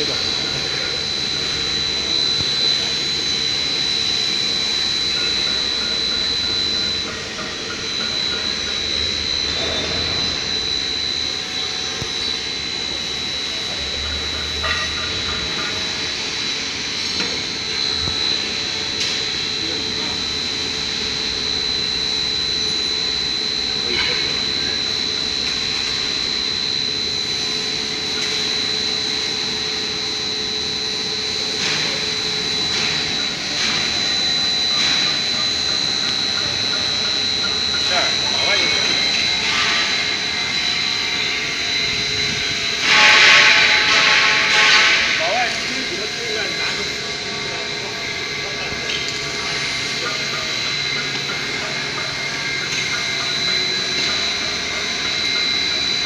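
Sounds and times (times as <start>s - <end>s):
high-pitched machine whine: 0.0s - 56.0s
machine running: 0.0s - 56.0s.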